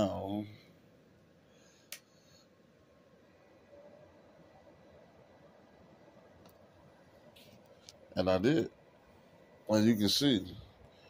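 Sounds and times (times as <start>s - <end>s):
faint steady noise: 0.0s - 11.0s.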